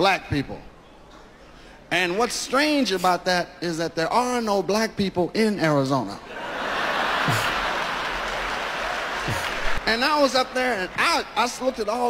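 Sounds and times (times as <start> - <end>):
audience laughing: 6.3 - 9.8
audience applauding: 6.9 - 11.0.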